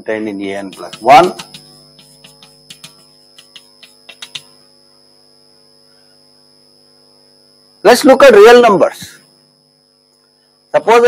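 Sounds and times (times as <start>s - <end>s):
electrical hum: 0.0s - 11.0s
chalk tapping on blackboard: 0.6s - 4.6s.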